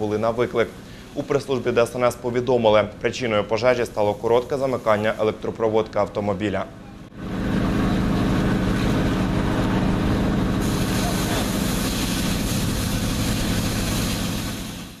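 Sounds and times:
fire hose spraying hiss: 0:00.0 - 0:02.3, 0:03.7 - 0:05.5, 0:10.6 - 0:15.0
fire engine motor running: 0:00.0 - 0:15.0
higher hiss: 0:03.6 - 0:05.5, 0:10.6 - 0:15.0.

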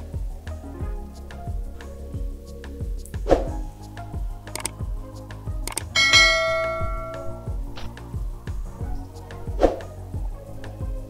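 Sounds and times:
background music with steady beat: 0:00.0 - 0:11.0
sharp clicks: 0:04.5 - 0:04.8, 0:05.7 - 0:06.0
bell ringing: 0:06.0 - 0:07.6.

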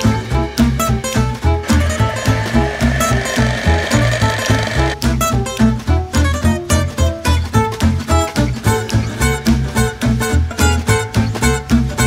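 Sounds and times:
background music with beat: 0:00.0 - 0:12.0
electric hand mixer running: 0:01.6 - 0:05.0.

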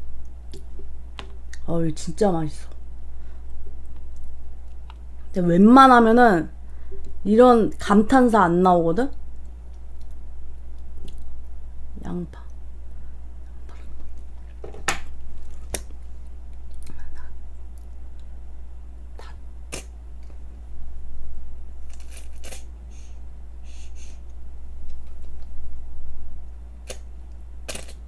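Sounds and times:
steady low hum: 0:00.0 - 0:28.0
soft wet chewing: 0:03.4 - 0:05.3, 0:09.2 - 0:11.5, 0:15.2 - 0:18.4.

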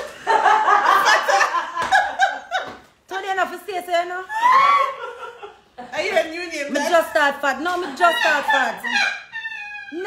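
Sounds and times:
woman laughing: 0:07.6 - 0:10.0.

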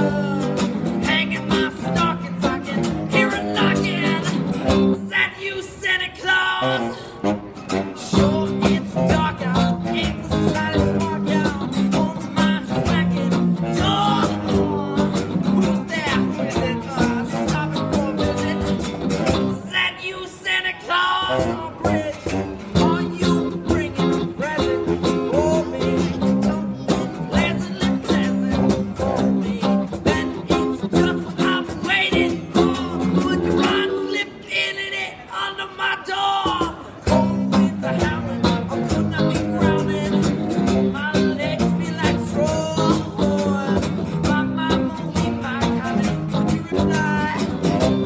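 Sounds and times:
electric guitar: 0:00.0 - 0:05.2, 0:06.6 - 0:19.7, 0:21.3 - 0:34.2, 0:36.9 - 0:48.0
cajon beat: 0:00.0 - 0:05.3, 0:07.4 - 0:19.9, 0:21.4 - 0:34.4, 0:36.3 - 0:48.0
acoustic guitar: 0:00.0 - 0:48.0
saxophone lead: 0:06.4 - 0:11.5, 0:21.2 - 0:31.2.

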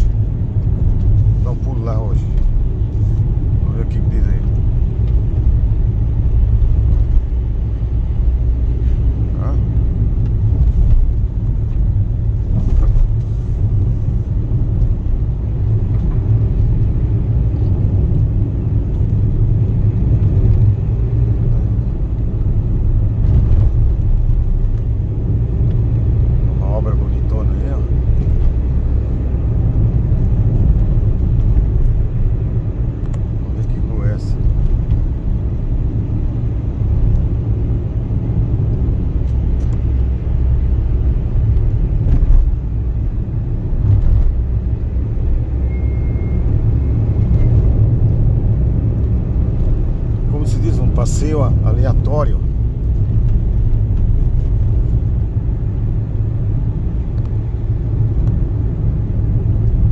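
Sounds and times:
car engine and tyres rumbling: 0:00.0 - 0:59.9.

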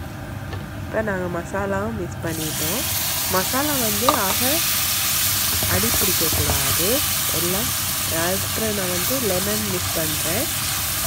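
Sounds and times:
hot oil sizzling: 0:02.3 - 0:11.0.

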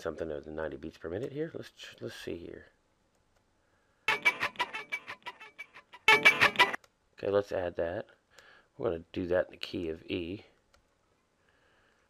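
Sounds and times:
palm-muted guitar strumming: 0:04.1 - 0:06.8.

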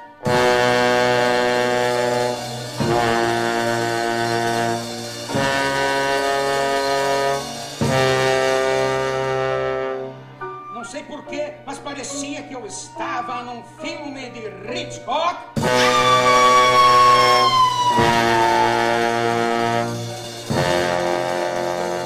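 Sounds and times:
band playing: 0:00.0 - 0:10.8, 0:15.6 - 0:22.0
bass trombone held notes: 0:00.2 - 0:10.3, 0:15.6 - 0:22.0.

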